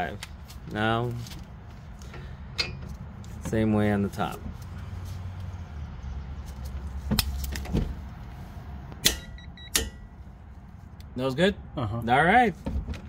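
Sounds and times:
high beeps: 0:09.2 - 0:09.8.

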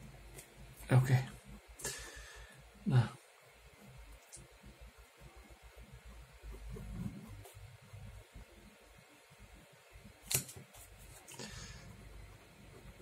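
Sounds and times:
pen scratching on paper: 0:06.5 - 0:07.7.

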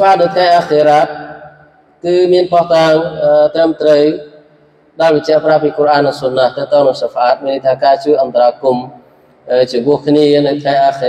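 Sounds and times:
man chanting recitation: 0:00.0 - 0:04.4.

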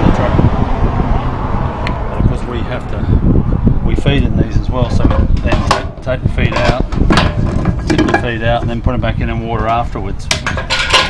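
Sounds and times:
wind rumbling on microphone: 0:00.0 - 0:11.0
metal clicks and knocks: 0:05.0 - 0:08.4, 0:09.6 - 0:11.0.

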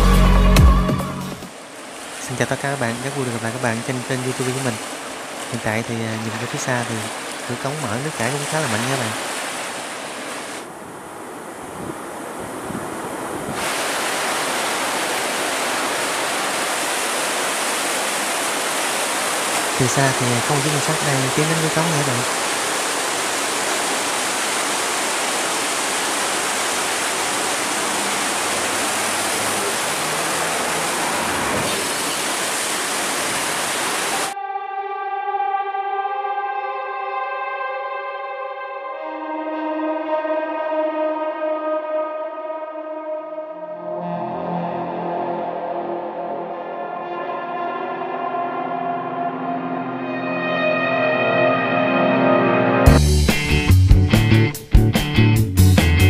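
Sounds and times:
instrumental background music: 0:00.0 - 0:01.5, 0:34.4 - 0:56.0
water rushing through sluice: 0:01.5 - 0:10.7, 0:11.4 - 0:34.4.

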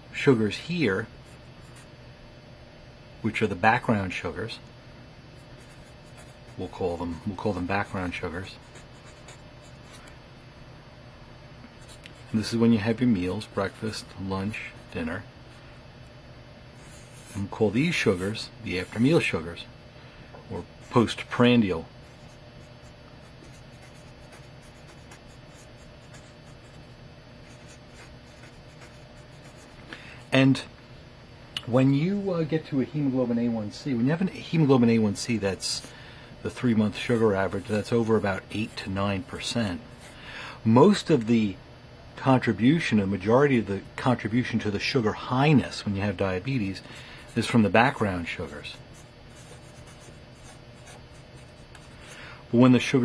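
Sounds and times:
steady low hum: 0:00.0 - 0:53.0
marker scratching on paper: 0:05.6 - 0:06.7, 0:07.6 - 0:10.1, 0:16.8 - 0:19.3, 0:22.0 - 0:26.8, 0:27.4 - 0:29.8, 0:36.9 - 0:40.2, 0:47.3 - 0:52.2.

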